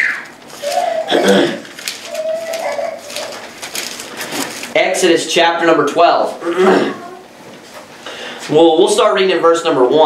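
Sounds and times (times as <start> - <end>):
thin pages rustling and flicking: 0.0 - 4.8.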